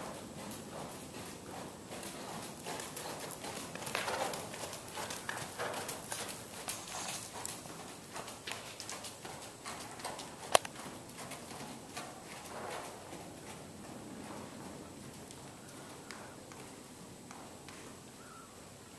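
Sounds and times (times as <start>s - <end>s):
horse hooves trotting on dirt: 0.0s - 18.9s.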